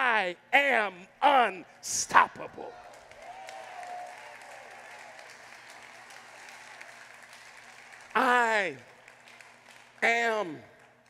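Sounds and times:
congregation applauding: 2.7 - 11.0.

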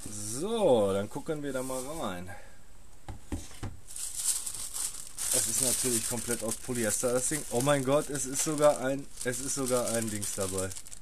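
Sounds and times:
tissue paper rustling: 1.6 - 2.1, 3.9 - 11.0.

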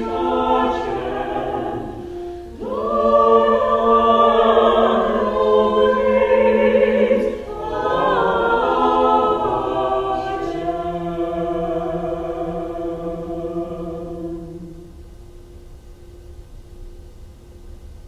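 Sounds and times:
choir singing in harmony: 0.0 - 15.1.

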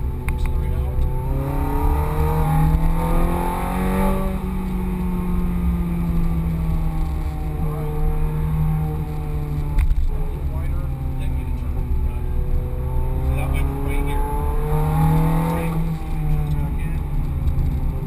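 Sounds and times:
car engine from inside cabin: 0.0 - 18.0.

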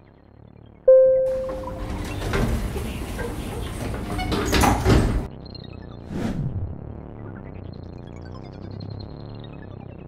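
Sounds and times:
low hum: 0.8 - 3.2
elevator doors sliding open: 1.0 - 5.3.

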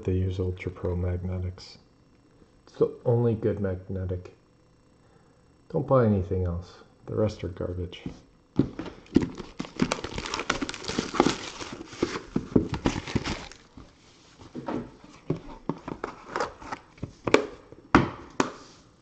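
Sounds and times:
cardboard packaging crinkling: 8.6 - 17.2.

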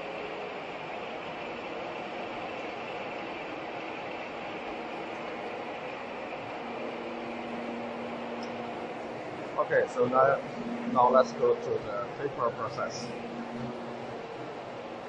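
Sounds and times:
faint low hum: 0.0 - 15.0
production line machinery running: 0.0 - 15.0.

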